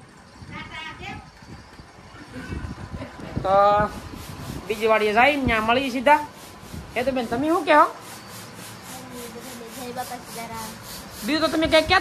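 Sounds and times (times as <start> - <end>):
rhythmic rubbing or scraping: 3.7 - 12.0.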